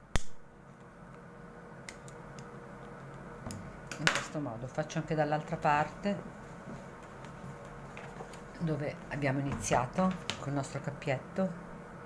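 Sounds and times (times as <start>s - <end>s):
lighter click: 0.1s - 0.4s.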